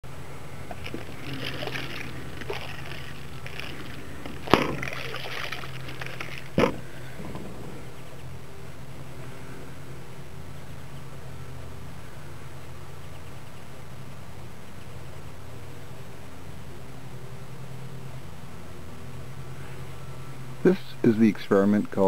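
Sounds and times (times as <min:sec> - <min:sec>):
low hum: 0:00.0 - 0:22.0
liquid sloshing in plastic bottle: 0:00.7 - 0:06.7
sharp knocks: 0:04.2 - 0:04.9, 0:06.6 - 0:07.7.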